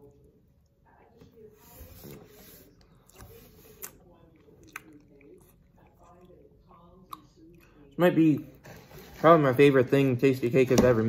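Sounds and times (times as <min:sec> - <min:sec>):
person chewing: 0:02.8 - 0:07.9.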